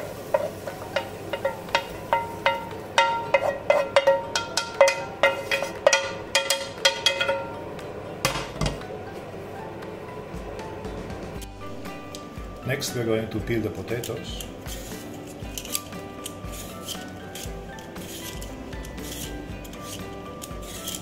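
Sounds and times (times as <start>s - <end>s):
wooden spoon knocking on frying pan: 0.3s - 7.5s.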